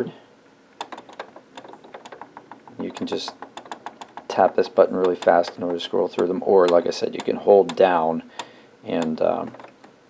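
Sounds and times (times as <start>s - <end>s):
rapid key clicking: 0.8s - 10.0s.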